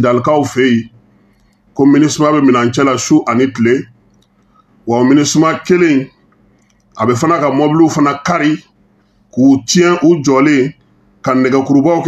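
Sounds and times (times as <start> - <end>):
person talking: 0.0 - 1.0, 1.8 - 4.0, 4.9 - 6.2, 7.0 - 8.7, 9.4 - 12.0.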